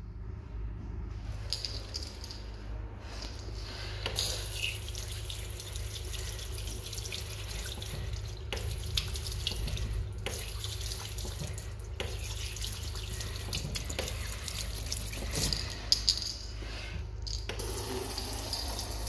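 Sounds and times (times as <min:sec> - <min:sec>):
water running into a ceramic basin: 0:04.1 - 0:15.5, 0:17.6 - 0:19.0.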